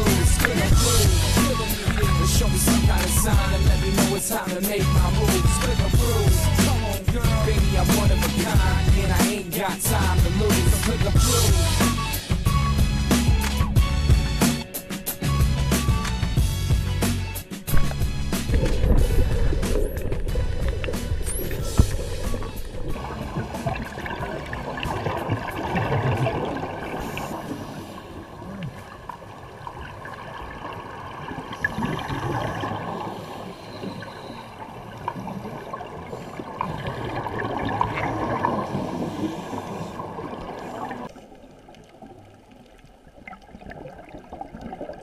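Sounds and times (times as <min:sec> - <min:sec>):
underwater air bubbling: 0:00.0 - 0:14.4, 0:17.6 - 0:45.0.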